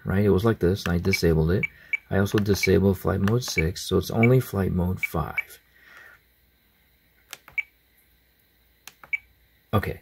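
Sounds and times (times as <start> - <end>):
radio control clicks: 7.2 - 7.6.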